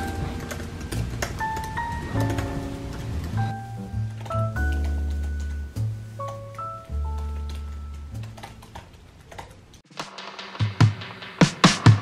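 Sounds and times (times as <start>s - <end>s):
laptop keyboard typing: 0.0s - 9.8s.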